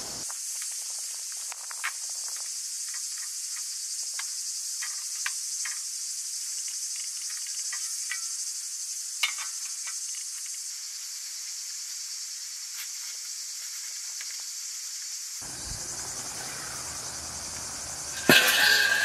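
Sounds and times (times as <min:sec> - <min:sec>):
insects chirring: 0:00.0 - 0:19.0.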